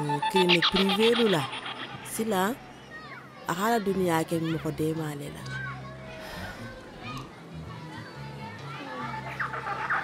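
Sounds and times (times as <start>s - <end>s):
distant children playing: 0.0s - 10.0s.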